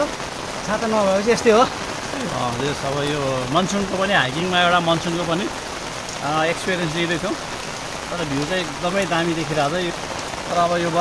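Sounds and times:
steady rain hiss: 0.0 - 11.0.

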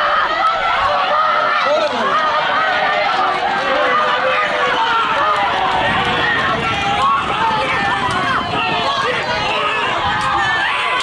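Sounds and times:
crowd shouting and cheering: 0.0 - 11.0
galloping hooves on dirt: 0.6 - 11.0.

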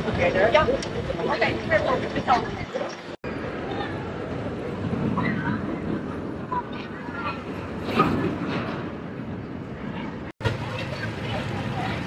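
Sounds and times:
crowd chatter: 0.0 - 12.0
roller coaster on steel track: 0.0 - 12.0.

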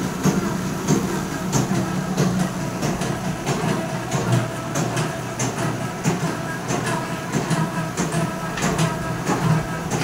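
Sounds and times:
machine clacking: 0.0 - 10.0
machine humming: 0.0 - 10.0.

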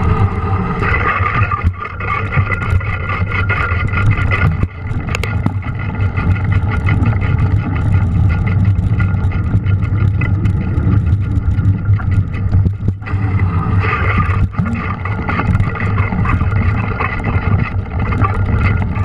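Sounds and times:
wind and tyre rumble: 0.0 - 19.0
bike clicking and rattling: 0.8 - 19.0.

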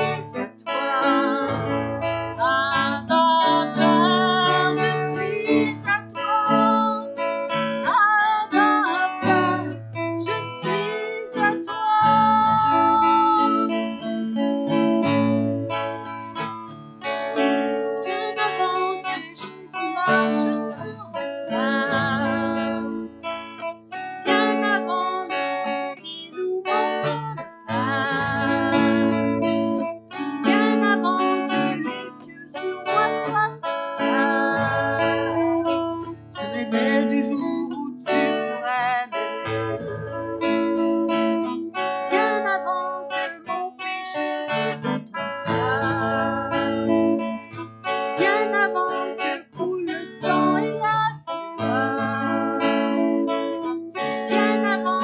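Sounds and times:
strummed acoustic guitar: 0.0 - 55.0
woman singing: 0.0 - 55.0.

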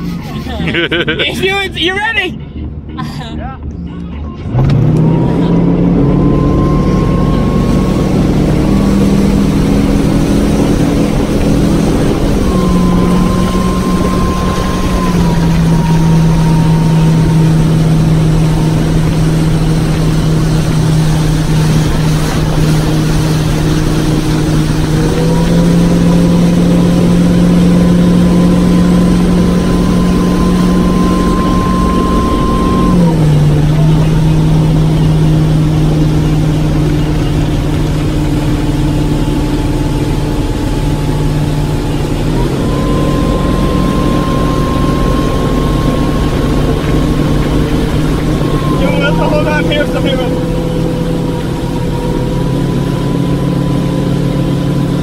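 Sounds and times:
motorboat engine running hard: 0.0 - 55.0
wind and spray rushing: 7.0 - 55.0.

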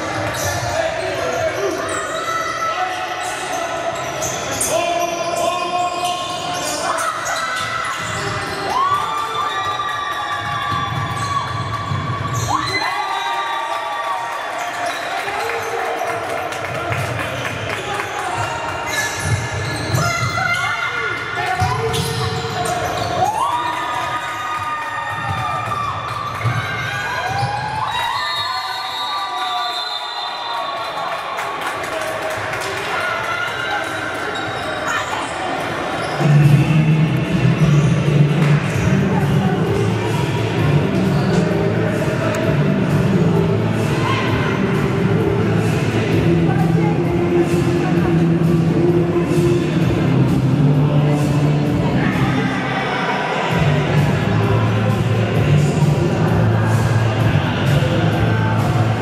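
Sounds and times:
sneakers squeaking: 0.0 - 12.9, 14.6 - 30.8, 33.6 - 43.0
crowd cheering: 6.6 - 45.8
loud music: 36.2 - 59.0.

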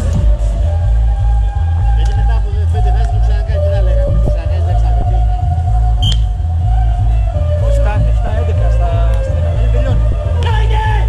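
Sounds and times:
music with heavy bass beat: 0.0 - 11.0.

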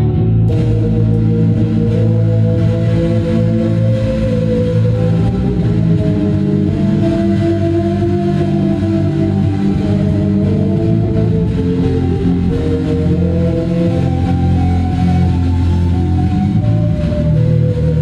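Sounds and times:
electric guitar: 0.0 - 18.0
live drone music: 0.0 - 18.0.

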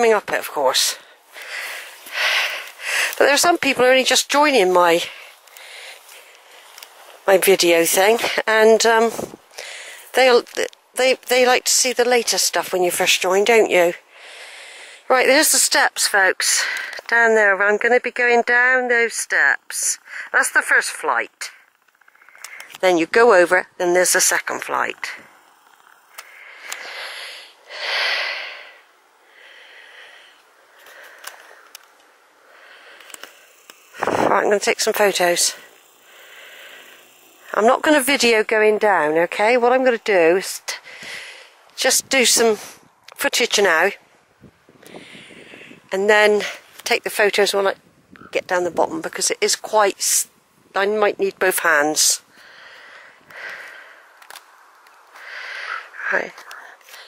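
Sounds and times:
raven calling: 21.6 - 22.8, 54.9 - 56.0
faint clicks: 21.6 - 22.9, 25.6 - 27.0, 30.4 - 34.2.

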